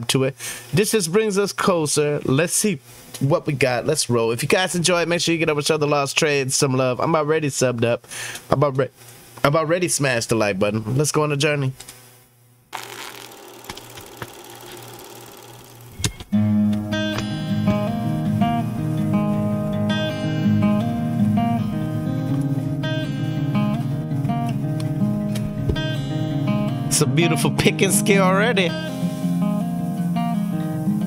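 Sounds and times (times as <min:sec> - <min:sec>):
fingerpicked acoustic guitar: 0:16.3 - 0:31.0
faint hiss: 0:27.7 - 0:31.0.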